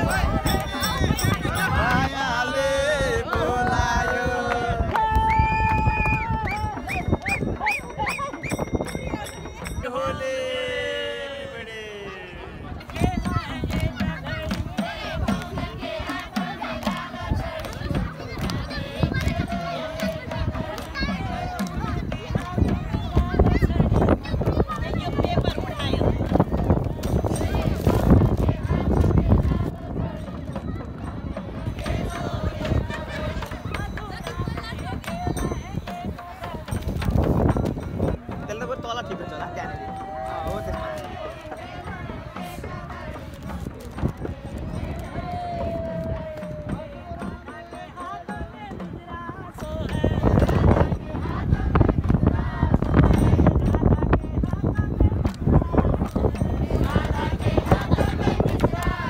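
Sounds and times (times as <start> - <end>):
rhythmic knocking beat: 0.0 - 10.2, 12.6 - 59.0
group of voices singing: 0.0 - 59.0.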